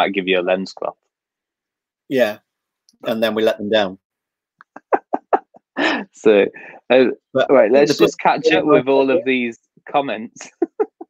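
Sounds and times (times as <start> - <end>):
man laughing: 4.6 - 6.2, 10.4 - 11.0.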